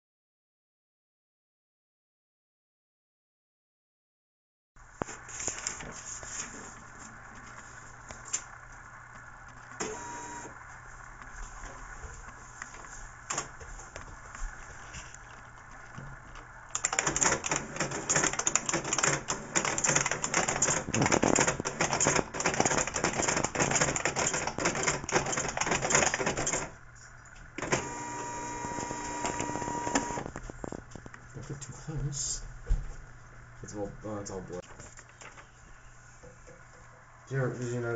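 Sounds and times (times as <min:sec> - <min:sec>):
dot-matrix printer printing: 0:09.7 - 0:10.6, 0:16.7 - 0:26.8, 0:27.6 - 0:30.4
typing on keyboard: 0:16.7 - 0:26.7.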